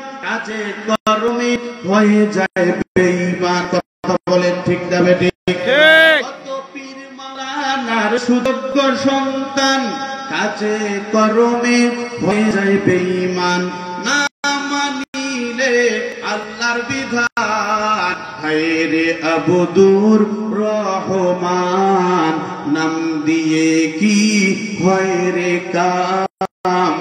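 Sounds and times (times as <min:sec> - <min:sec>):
man chanting into microphone: 0:00.0 - 0:27.0.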